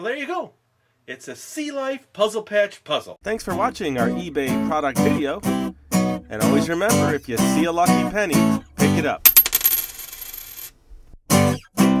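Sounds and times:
coin clinking and ringing: 0:09.3 - 0:10.8.

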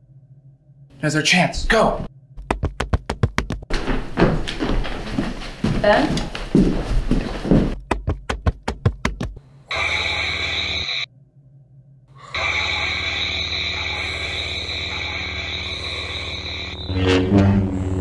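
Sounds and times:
quick knocks: 0:02.4 - 0:04.9, 0:07.7 - 0:09.4
lightsaber electric hum: 0:09.5 - 0:18.0.

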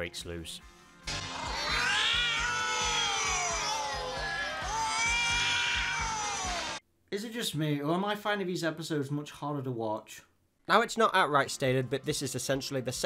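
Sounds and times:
electronic cartoon music: 0:01.0 - 0:06.8.

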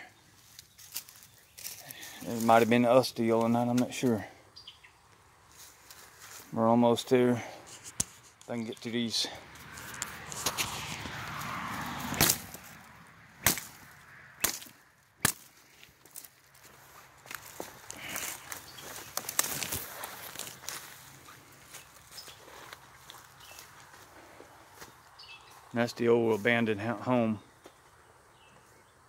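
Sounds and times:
footsteps crunching through leaves: 0:00.3 - 0:02.9, 0:05.4 - 0:06.6, 0:09.5 - 0:26.9
twigs snapping: 0:00.5 - 0:02.5, 0:09.5 - 0:21.0.

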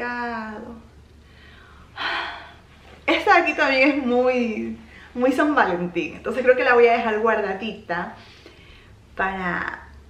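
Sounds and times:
woman gasping: 0:01.3 - 0:02.6.

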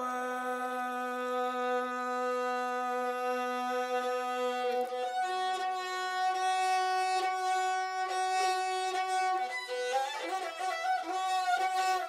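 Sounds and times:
spike fiddle bowed note: 0:00.0 - 0:12.0.

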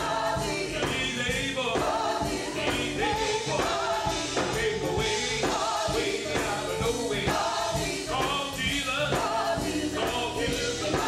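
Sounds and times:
drums steady beat: 0:00.0 - 0:11.0
group singing gospel in harmony: 0:00.0 - 0:11.0.

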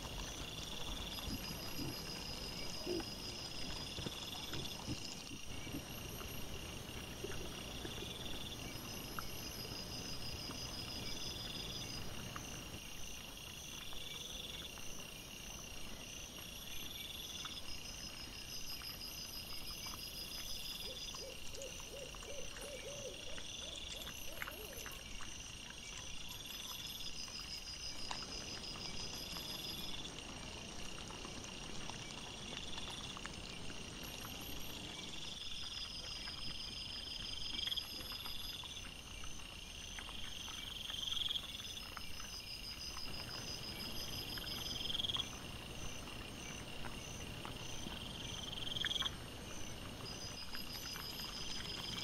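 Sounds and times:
insects chirping: 0:00.0 - 0:52.0.

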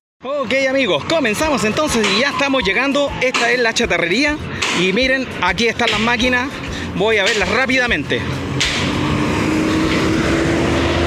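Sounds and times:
bus engine humming: 0:00.3 - 0:11.0.

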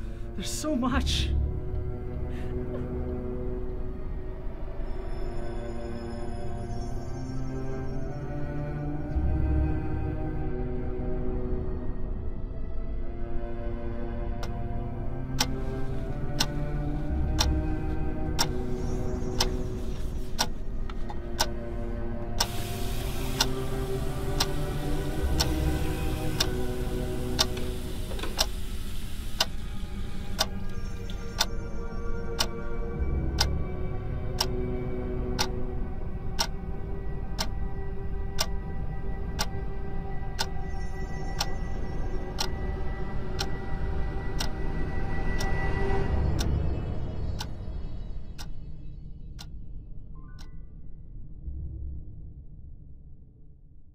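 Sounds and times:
dark droning film music: 0:00.0 - 0:53.9
clock-like ticking: 0:15.2 - 0:20.6, 0:21.2 - 0:21.6, 0:22.4 - 0:28.6, 0:29.4 - 0:46.6, 0:47.4 - 0:47.6, 0:48.3 - 0:48.6.

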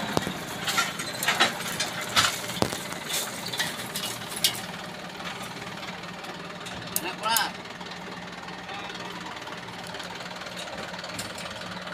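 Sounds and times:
drilling rig engine running: 0:00.0 - 0:11.9.

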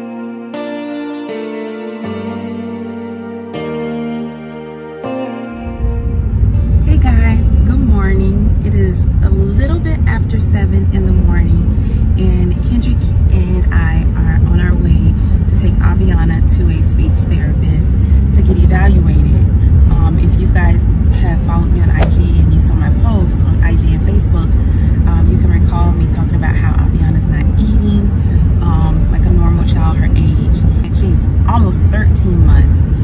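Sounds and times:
vehicle and road rumble: 0:05.8 - 0:33.0
woman talking: 0:06.9 - 0:33.0.

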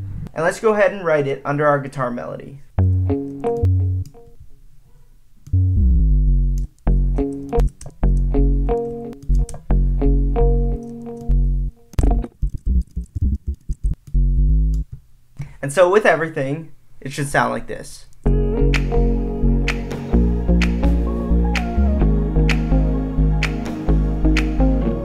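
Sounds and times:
plucked guitar melody: 0:02.8 - 0:04.4, 0:05.5 - 0:14.8, 0:18.3 - 0:25.0
plucked synth sub bass: 0:05.6 - 0:08.7, 0:11.3 - 0:14.9, 0:18.3 - 0:25.0.

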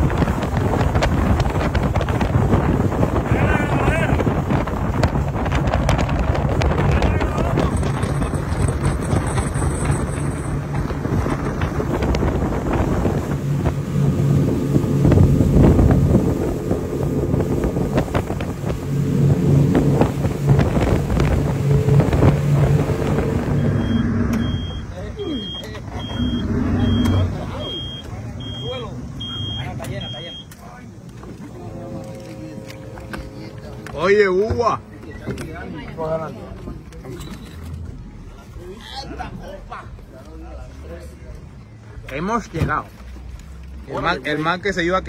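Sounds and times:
motorboat engine running: 0:00.0 - 0:38.6
wind and water noise: 0:00.0 - 0:45.0
voices: 0:03.0 - 0:04.7, 0:19.7 - 0:45.0
short high beeps: 0:23.5 - 0:30.5.

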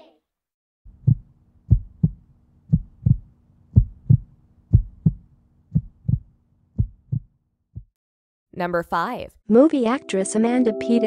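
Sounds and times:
steady low hum: 0:00.9 - 0:07.2
heartbeat thumps: 0:00.9 - 0:08.0.

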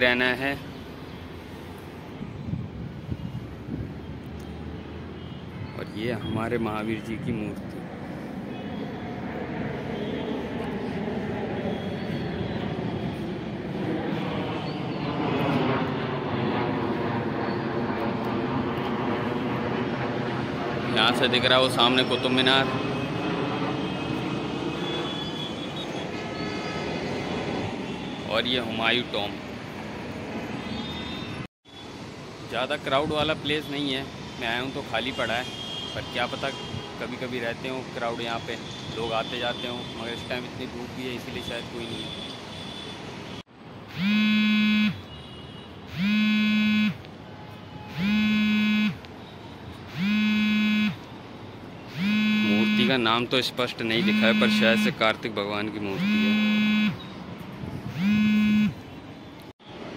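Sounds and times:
electronic buzzer buzzing: 0:43.9 - 0:45.1, 0:45.9 - 0:47.0, 0:47.9 - 0:49.0, 0:49.9 - 0:51.0, 0:51.9 - 0:53.0, 0:54.0 - 0:55.0, 0:56.0 - 0:57.0, 0:57.9 - 0:58.8.

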